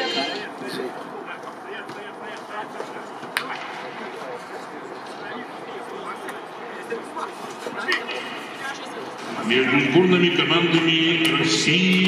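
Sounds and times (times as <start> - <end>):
indistinct voices: 0.0 - 12.0
stadium ambience: 0.0 - 12.0.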